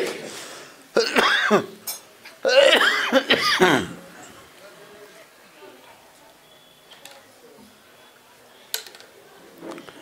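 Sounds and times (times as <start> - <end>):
man coughing: 1.0 - 1.7, 2.5 - 4.0.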